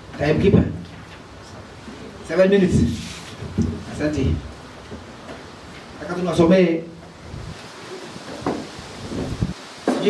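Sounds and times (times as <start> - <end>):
wind rumbling on microphone: 7.2 - 9.6.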